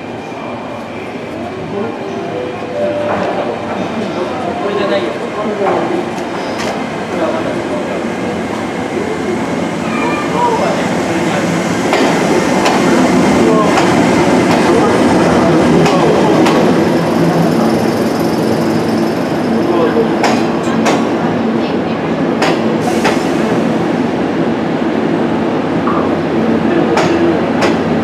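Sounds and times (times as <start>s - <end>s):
train wheels on rails: 2.8s - 28.0s.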